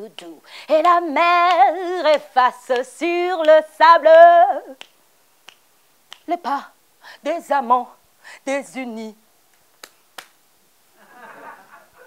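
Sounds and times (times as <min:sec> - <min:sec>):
finger snaps: 0:00.1 - 0:03.6, 0:04.7 - 0:06.4, 0:09.5 - 0:10.4.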